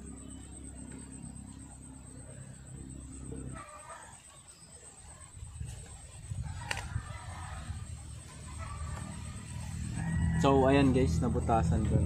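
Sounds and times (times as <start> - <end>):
chicken clucking: 3.4 - 10.2.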